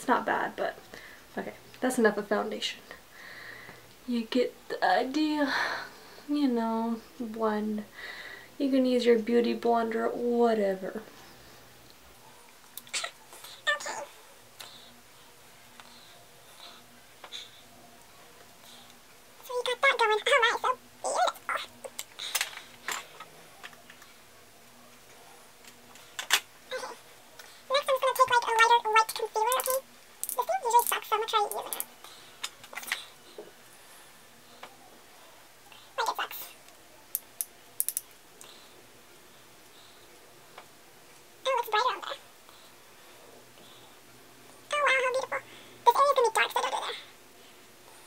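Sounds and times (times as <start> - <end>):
high-pitched voiced calls: 12.8 - 14.2
makeup items clicking and rustling: 29.0 - 33.1.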